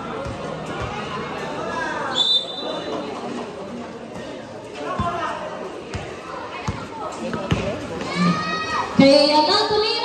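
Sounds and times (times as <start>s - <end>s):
voices of players and spectators: 0.0s - 10.0s
basketball bouncing on court: 0.1s - 1.0s, 4.9s - 7.9s.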